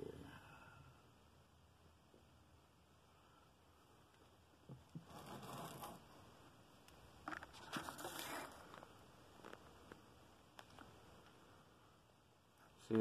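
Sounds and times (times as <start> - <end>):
rustling and scraping of handling: 4.1 - 6.2, 7.2 - 11.4.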